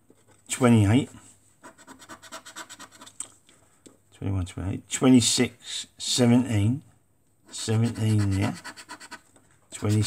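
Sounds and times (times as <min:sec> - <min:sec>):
coin scratching scratchcard: 0:07.6 - 0:09.2.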